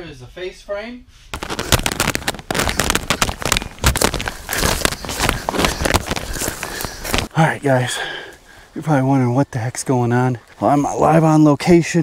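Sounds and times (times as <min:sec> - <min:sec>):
footsteps crunching through twigs: 0:01.4 - 0:07.3.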